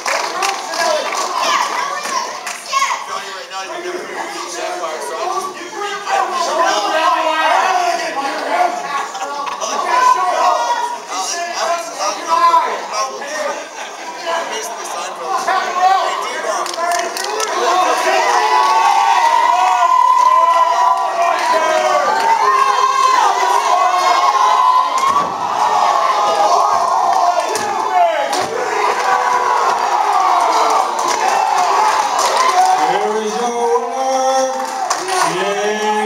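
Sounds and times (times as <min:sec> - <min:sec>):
spectators shouting and yelling: 0:00.0 - 0:36.0
children's high voices: 0:00.8 - 0:03.3
long drawn-out yell: 0:17.6 - 0:33.0.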